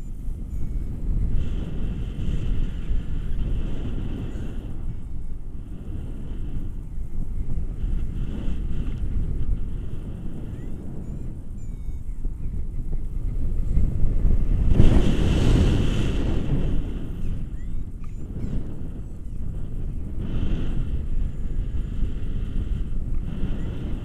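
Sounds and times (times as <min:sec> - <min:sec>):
wind rumble on microphone: 0:00.0 - 0:24.0.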